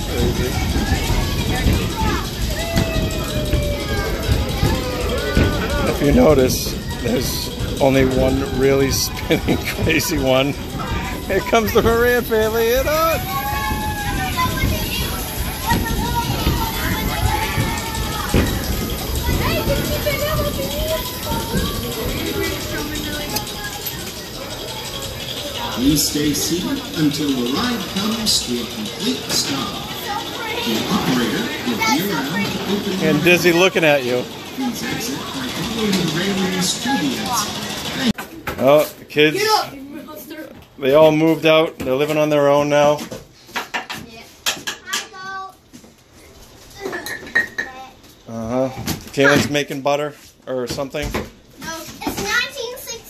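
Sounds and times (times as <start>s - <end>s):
voices chattering: 0.0s - 43.0s
ride machinery rumbling: 0.0s - 43.4s.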